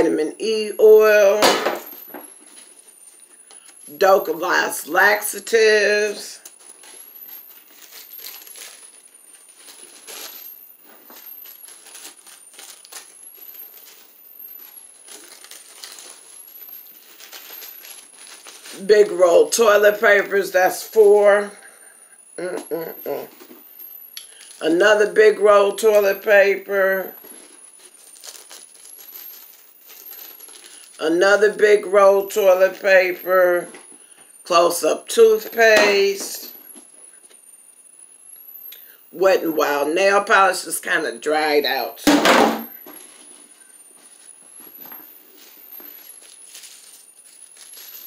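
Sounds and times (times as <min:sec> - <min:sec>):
plastic wrappers rustling: 0:00.4 - 0:21.5, 0:23.0 - 0:34.2, 0:41.6 - 0:48.0.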